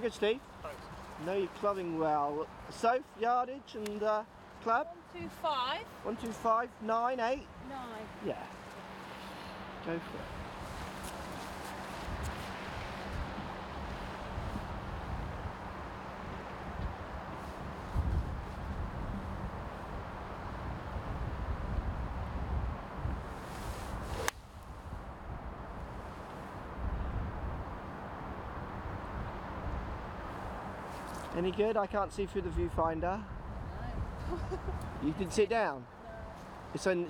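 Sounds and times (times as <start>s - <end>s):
wind buffeting microphone: 9.6s - 31.0s, 32.0s - 35.4s.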